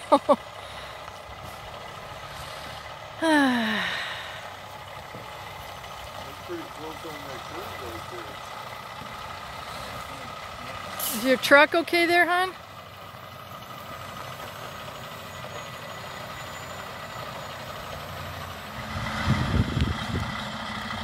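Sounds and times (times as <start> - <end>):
diesel truck engine humming: 0.0 - 21.0.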